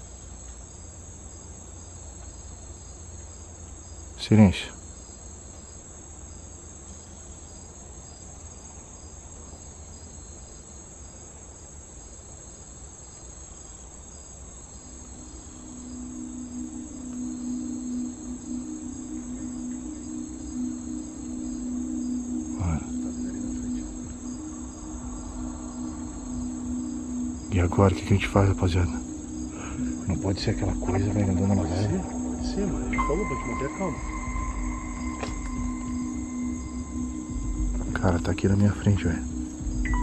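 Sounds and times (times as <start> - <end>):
crickets chirring: 0.0 - 40.0
pulsing insect chirp: 0.0 - 40.0
low music drone: 14.9 - 40.0.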